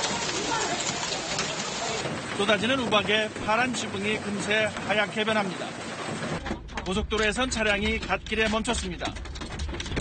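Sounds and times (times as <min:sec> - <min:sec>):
hail and heavy rain on paving: 0:00.0 - 0:10.0.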